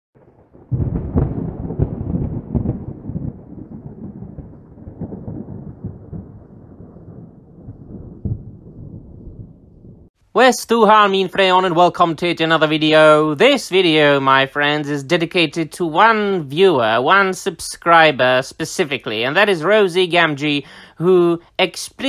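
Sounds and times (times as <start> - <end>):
thunder-like rumble: 0.2 - 10.2.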